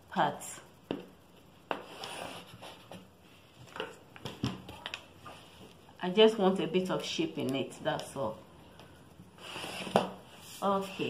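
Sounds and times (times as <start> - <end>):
chalk scraping along ruler on cloth: 1.7 - 3.0, 9.4 - 11.0.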